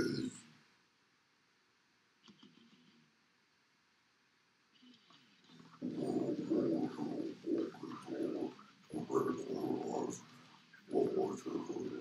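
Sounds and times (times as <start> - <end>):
deep guttural growl vocals: 5.7 - 10.3, 10.9 - 12.0.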